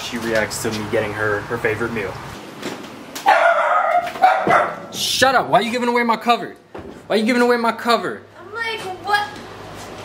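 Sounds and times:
dog barking: 3.2s - 4.9s.

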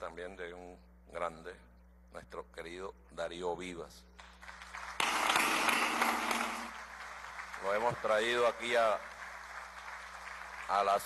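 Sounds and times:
people applauding: 4.2s - 11.0s.

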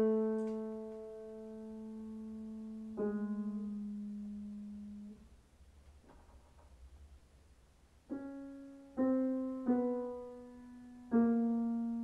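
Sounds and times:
slow piano notes: 0.0s - 5.4s, 8.0s - 12.0s.

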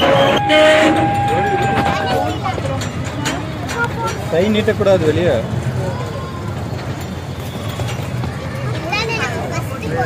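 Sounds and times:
toy train horn: 0.0s - 1.9s
passengers chattering: 0.0s - 10.0s
train carriage rumbling: 0.0s - 10.0s.

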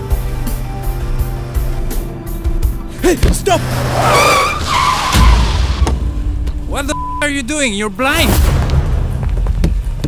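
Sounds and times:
car tyres screeching: 3.1s - 6.2s.

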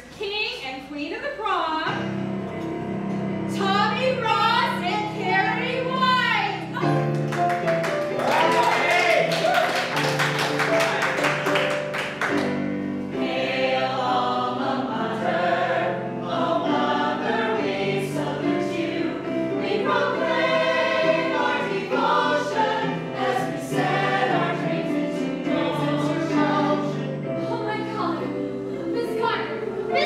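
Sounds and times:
instrumental accompaniment: 1.9s - 30.0s
ensemble singing in chorus: 2.2s - 3.6s, 12.4s - 30.0s
hand clapping: 7.0s - 12.6s.

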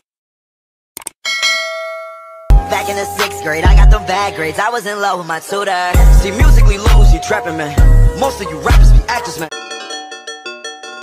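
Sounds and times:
notification bell ding: 1.3s - 2.6s.

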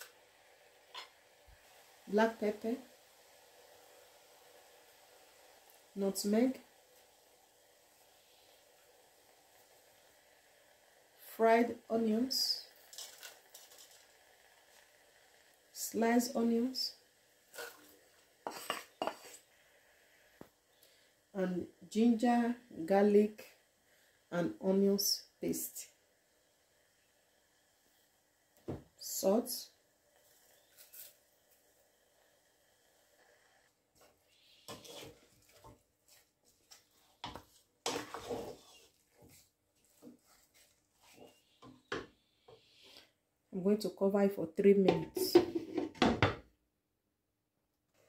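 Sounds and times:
utensils scraping plate and pot: 17.6s - 19.5s, 34.5s - 35.7s, 37.2s - 39.4s, 44.9s - 46.0s.

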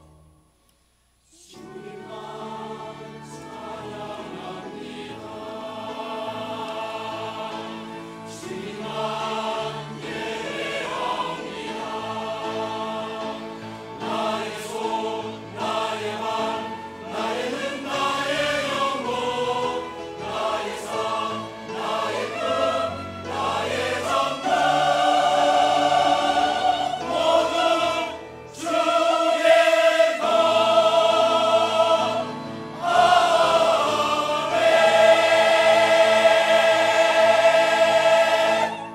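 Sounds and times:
church choir singing: 1.3s - 38.9s
piano: 1.3s - 38.9s
string ensemble: 1.5s - 38.9s.

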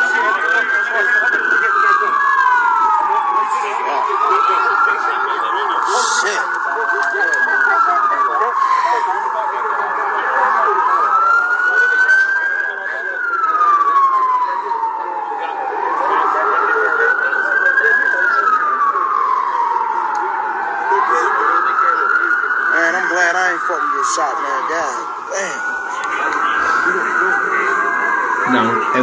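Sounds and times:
emergency siren wailing: 0.0s - 29.0s.

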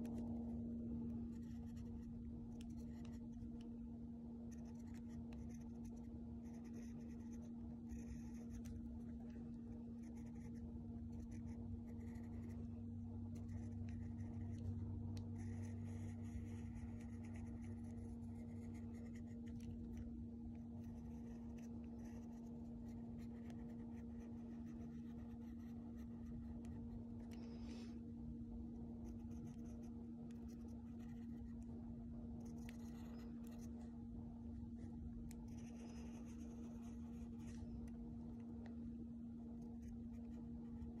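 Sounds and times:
steady low hum: 0.0s - 41.0s
pen scratching on tracing paper: 1.3s - 3.3s, 4.5s - 12.7s, 13.3s - 14.7s, 15.4s - 27.4s, 29.0s - 31.6s, 32.4s - 33.8s, 34.8s - 37.8s, 39.6s - 41.0s.

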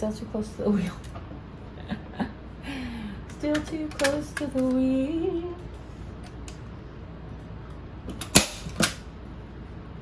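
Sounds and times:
staple gun snap: 8.1s - 9.0s.

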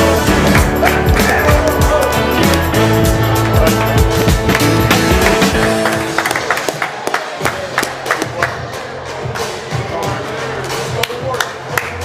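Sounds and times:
bass-heavy music track: 0.0s - 12.0s.

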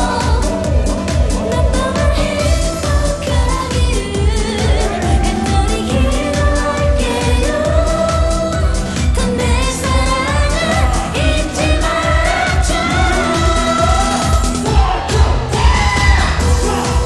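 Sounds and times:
woman singing into a microphone: 0.0s - 14.6s
backing band with driving beat: 0.0s - 17.0s.

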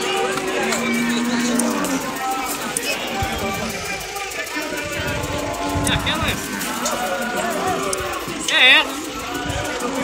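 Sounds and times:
cow mooing: 0.0s - 2.4s
background voices: 0.0s - 10.0s.

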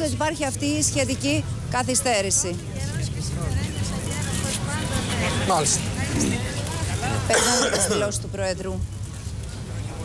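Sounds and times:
crowd murmur: 0.7s - 8.8s.

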